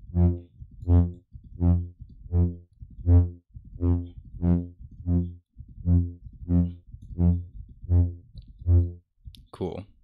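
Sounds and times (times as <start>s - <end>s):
brass-style synth lead: 0.1s - 9.0s.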